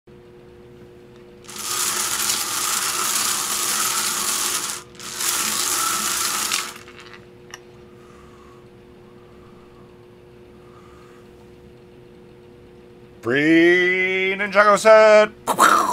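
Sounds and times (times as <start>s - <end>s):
balls rattling in bingo cage: 1.5s - 7.2s.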